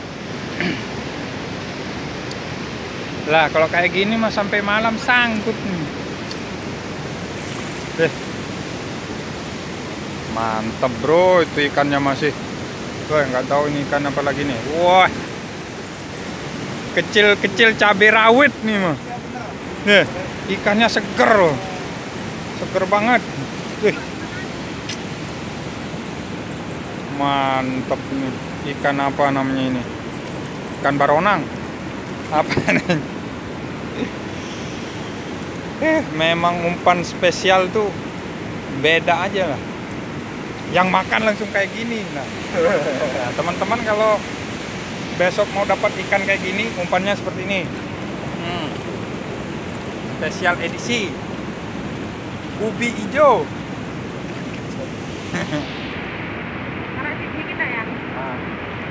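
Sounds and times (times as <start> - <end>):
river water rushing: 0.0 - 58.9
steady outdoor background noise: 0.0 - 58.9
man saying eh: 18.7 - 21.9, 42.5 - 43.7.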